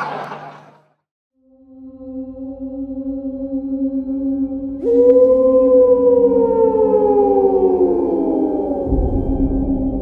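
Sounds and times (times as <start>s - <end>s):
ambient drone: 1.5s - 10.0s
low rumble: 8.6s - 10.0s.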